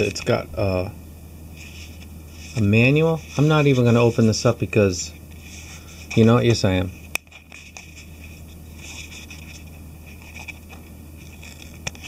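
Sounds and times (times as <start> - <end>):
steady low hum: 0.0 - 12.0
paper manual rustling: 1.6 - 12.0.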